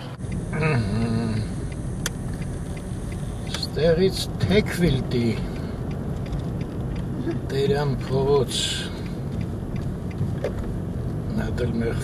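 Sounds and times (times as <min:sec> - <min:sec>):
car engine and tyre rumble: 0:00.0 - 0:12.0.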